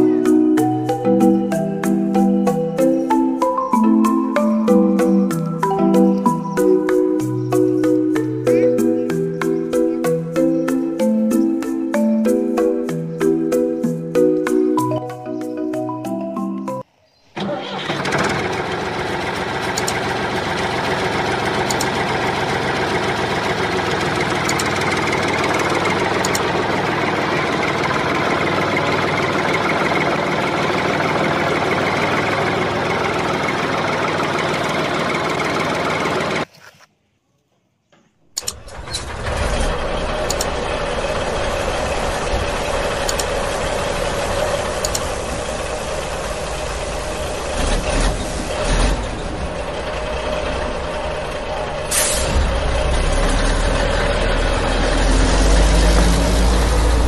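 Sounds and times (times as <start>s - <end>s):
vehicle engine running: 0.0s - 14.9s, 17.4s - 36.5s, 38.4s - 57.0s.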